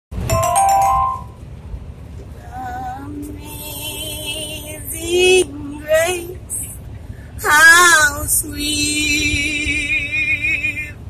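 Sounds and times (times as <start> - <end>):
electronic bell-like chime: 0.2 - 1.4.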